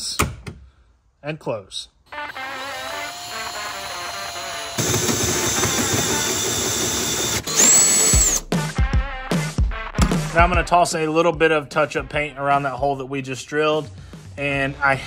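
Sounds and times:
drill cutting through sheet metal: 0:02.1 - 0:08.5
background music: 0:02.1 - 0:15.0.

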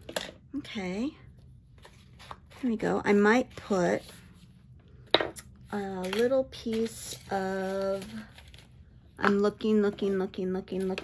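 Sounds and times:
woman speaking: 0:00.5 - 0:01.3, 0:02.6 - 0:04.2, 0:05.7 - 0:08.3, 0:09.2 - 0:11.0.

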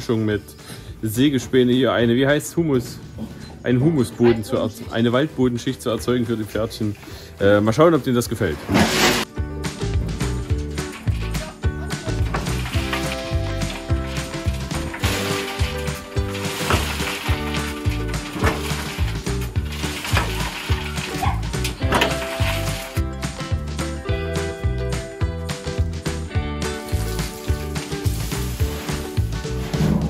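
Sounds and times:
wood chips into metal wheelbarrow: 0:08.4 - 0:09.3, 0:10.7 - 0:23.1, 0:26.6 - 0:30.0
shovel scraping wood chips: 0:08.5 - 0:09.3, 0:12.2 - 0:23.0, 0:26.7 - 0:30.0
background music with beat: 0:09.2 - 0:30.0.

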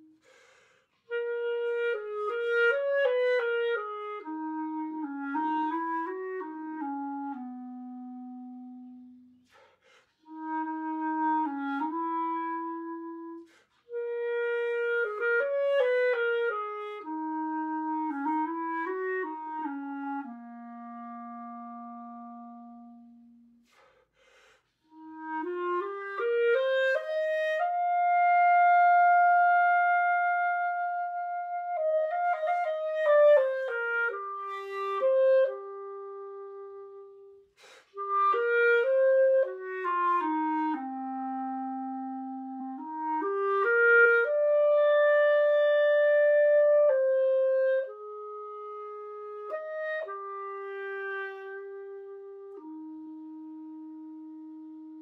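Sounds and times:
solo clarinet jazz ballad: 0:00.0 - 0:55.0.

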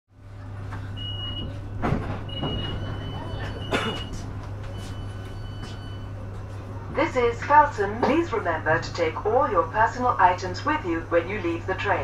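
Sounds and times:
train interior low hum: 0:00.1 - 0:12.0.

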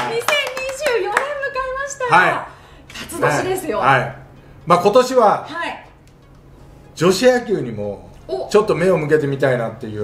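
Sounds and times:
people clapping: 0:00.0 - 0:01.6.

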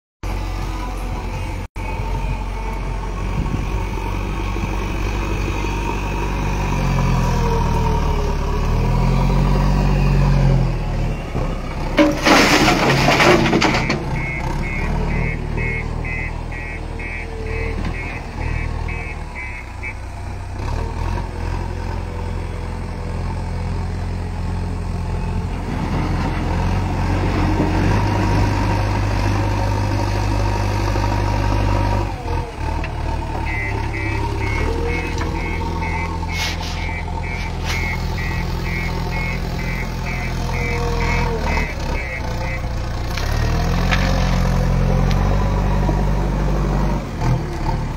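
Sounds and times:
diesel engines digging: 0:00.2 - 0:47.9
pulsed electronic beeping: 0:33.5 - 0:42.6.

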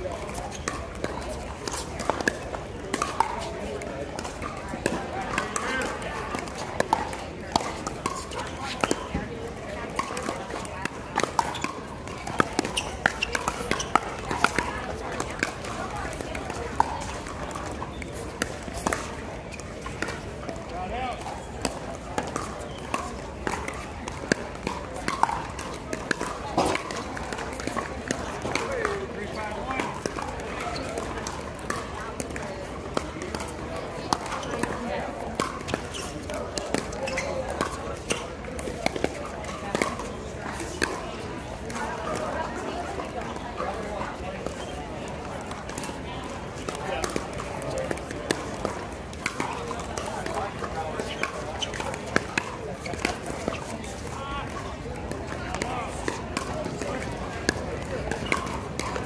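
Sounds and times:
voices chattering: 0:00.0 - 0:59.0
paddles striking plastic ball: 0:21.1 - 0:34.8.

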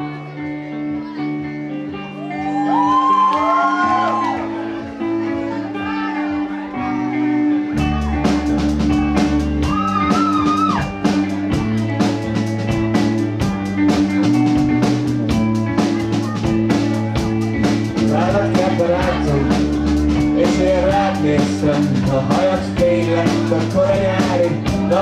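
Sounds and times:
electric guitars: 0:00.0 - 0:25.0
rock band playing: 0:00.0 - 0:25.0
drum kit steady beat: 0:07.8 - 0:25.0.

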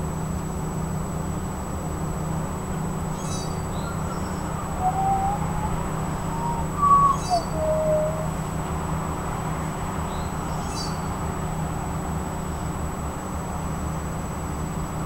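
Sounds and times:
distant traffic hum: 0:03.2 - 0:08.8
birds chirping and whistling: 0:03.8 - 0:08.4.

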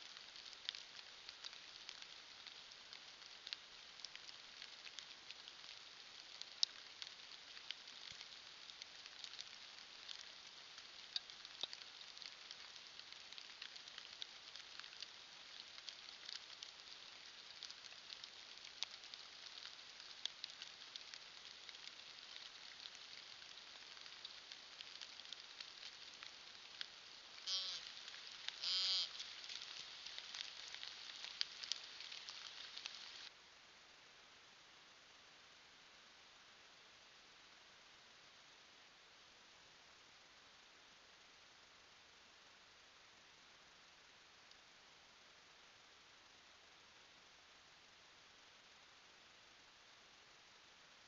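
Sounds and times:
light ticks: 0:00.0 - 0:33.3, 0:44.4 - 0:44.6
faint steady hiss: 0:00.0 - 0:51.0
short pitched animal calls: 0:27.4 - 0:27.9, 0:28.6 - 0:29.2.

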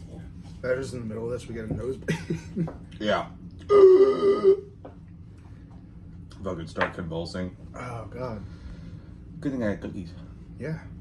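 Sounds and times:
man groaning: 0:03.7 - 0:04.7.

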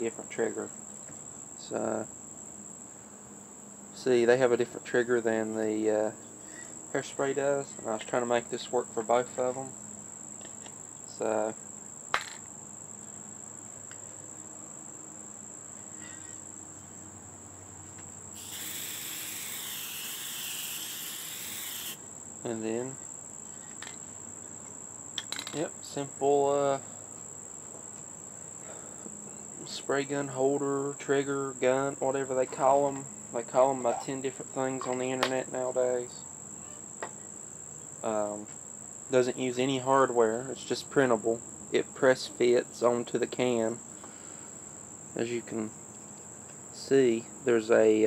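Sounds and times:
insects trilling: 0:00.0 - 0:48.0
spray paint can hissing: 0:18.4 - 0:22.0.

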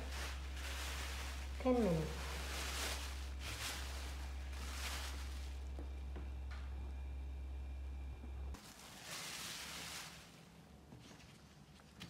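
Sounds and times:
plastic sheet rustling: 0:00.0 - 0:05.8, 0:08.6 - 0:12.0
low hum: 0:00.0 - 0:11.9.

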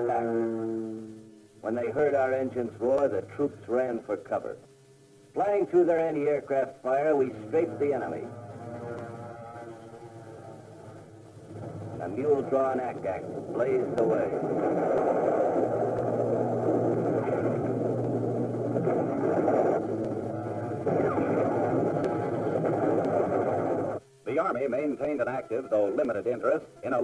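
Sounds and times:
propeller aircraft engines droning: 0:00.0 - 0:27.0.

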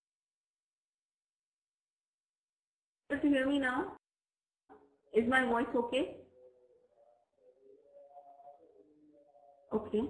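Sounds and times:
faint singing: 0:06.2 - 0:10.0.

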